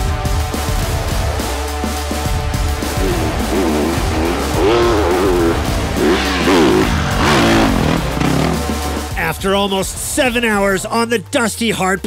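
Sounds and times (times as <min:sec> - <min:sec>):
background music: 0:00.0 - 0:12.0
motorcycle engines revving: 0:02.6 - 0:09.2.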